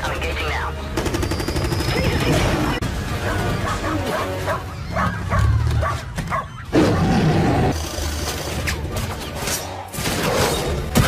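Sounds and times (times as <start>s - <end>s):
dramatic score music: 0.0s - 11.0s
dog-like animal call: 3.3s - 7.3s.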